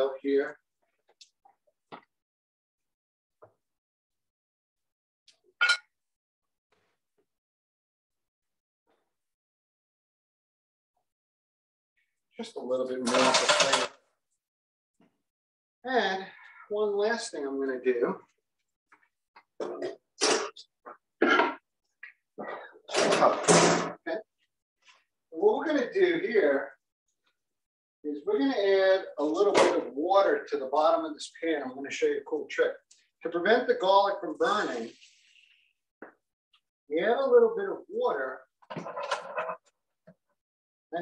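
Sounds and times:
kitchenware clinking: 0:05.6 - 0:05.9.

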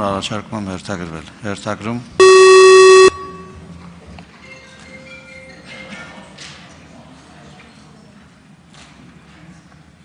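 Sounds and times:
loud steady electronic beep: 0:02.2 - 0:03.6.

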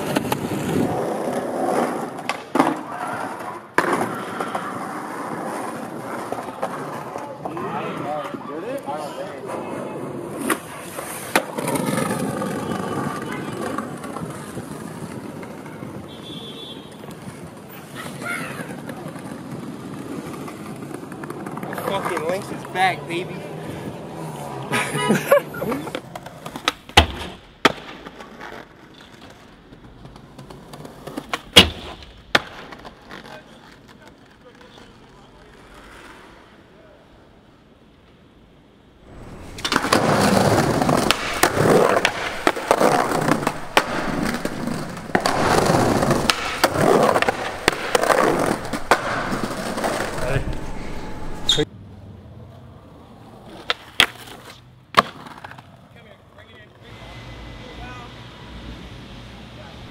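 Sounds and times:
wheels rolling over brick paving: 0:00.0 - 0:16.1, 0:17.1 - 0:36.6, 0:39.1 - 0:51.7
skateboard popping and landing: 0:00.0 - 0:16.4, 0:17.0 - 0:22.8, 0:25.8 - 0:36.4, 0:39.1 - 0:51.7, 0:53.2 - 0:55.9
skateboard wheels rolling: 0:00.0 - 0:59.9.

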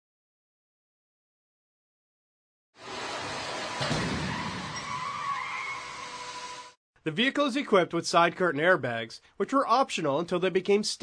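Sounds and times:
tires squealing: 0:03.5 - 0:06.7
barrier crashing into car: 0:03.8 - 0:04.8.

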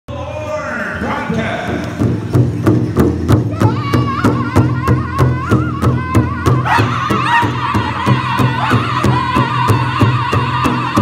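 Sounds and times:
large drum beats: 0:01.6 - 0:11.0
high wavering voice singing: 0:03.5 - 0:11.0.

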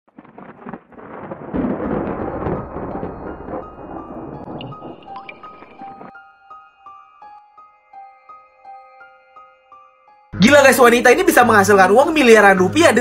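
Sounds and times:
deep boom: 0:00.2 - 0:06.1
high sustained keyboard notes: 0:01.7 - 0:13.0.

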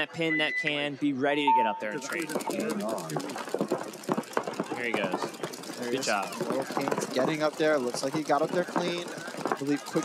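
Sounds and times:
paintball guns firing rapidly: 0:02.0 - 0:10.0.

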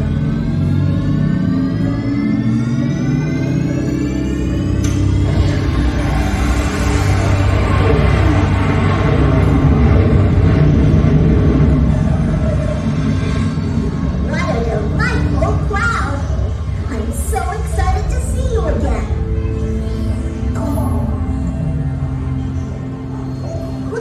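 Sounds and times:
rising synth tones: 0:00.0 - 0:24.0
loud rumbling whoosh: 0:04.8 - 0:22.4.

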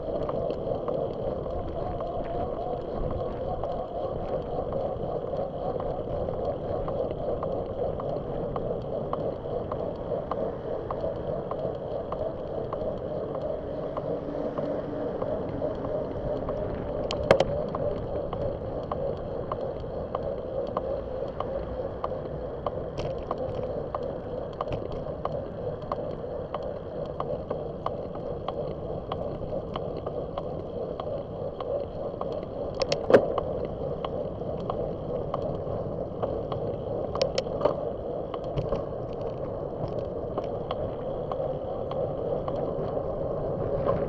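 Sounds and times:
light ticks: 0:00.0 - 0:44.0
wind noise: 0:00.0 - 0:44.0
road noise: 0:10.2 - 0:25.3.

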